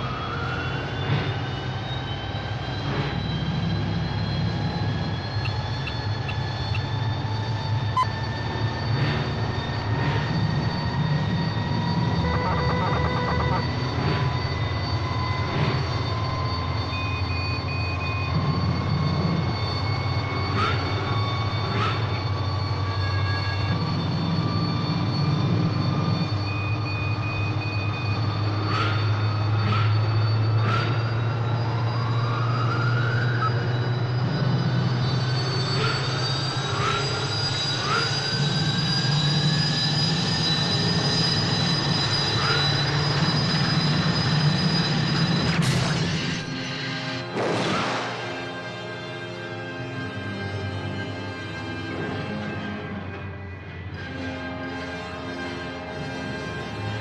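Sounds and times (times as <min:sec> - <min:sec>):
motor hum and rising whine: 0:00.0 - 0:47.4, 0:48.0 - 0:57.0
short electronic beeps: 0:12.1 - 0:13.9.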